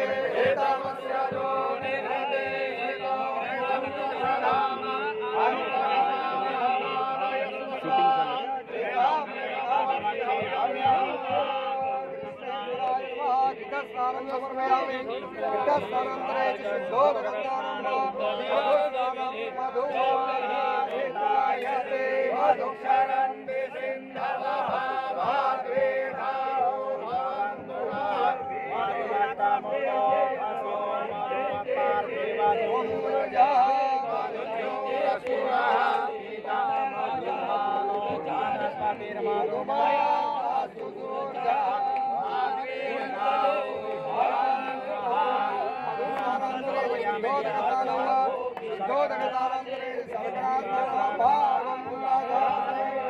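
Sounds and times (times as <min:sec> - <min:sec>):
voices chanting mantras: 0:00.0 - 0:53.0.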